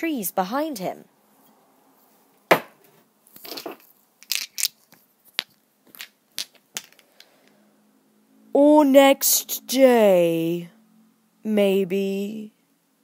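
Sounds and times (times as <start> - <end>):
plate smashing: 2.5 - 2.8
pieces rattling and clinking: 3.4 - 7.3.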